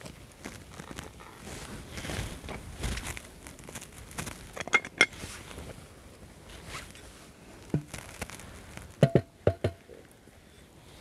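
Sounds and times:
plastic packet crinkling: 0.0s - 1.4s.

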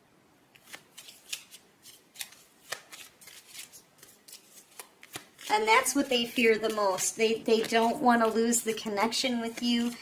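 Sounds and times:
cards being shuffled: 0.6s - 10.0s.

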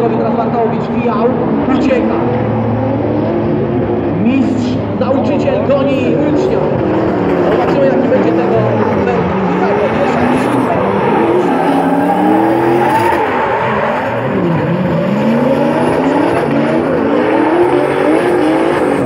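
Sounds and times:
car engines revving hard: 0.0s - 19.0s.

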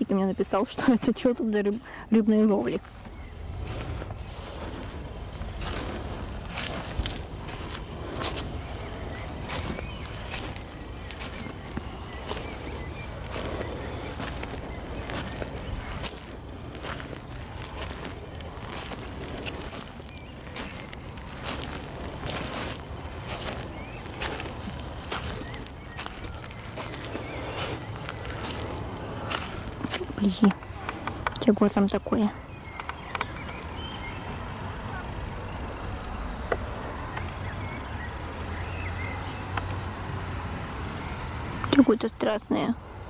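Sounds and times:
footsteps crunching on pebbles: 0.0s - 32.4s.

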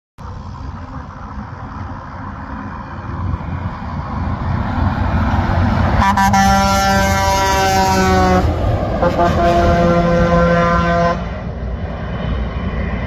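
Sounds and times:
vehicles approaching on highway: 0.2s - 13.0s.

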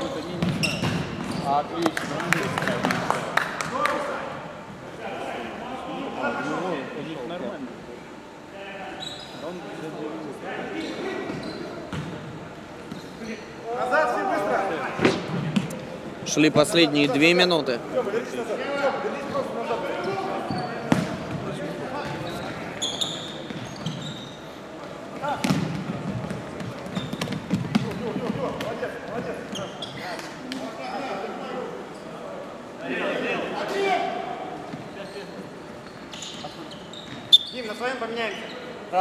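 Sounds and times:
players shouting in echoing hall: 13.6s - 15.3s, 32.5s - 34.7s.

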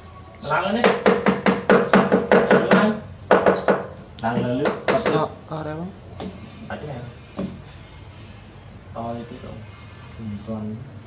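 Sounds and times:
hand tapping on wooden table: 0.9s - 5.2s.

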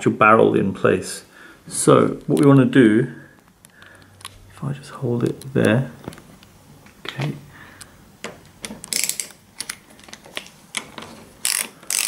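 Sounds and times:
screwdriver metallic clicks: 10.8s - 12.0s.

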